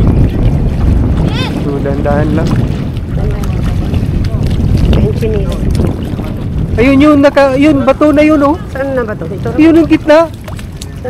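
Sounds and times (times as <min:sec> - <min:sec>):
feet splashing through shallow water: 0:00.0 - 0:11.0
wind noise on microphone: 0:00.0 - 0:11.0.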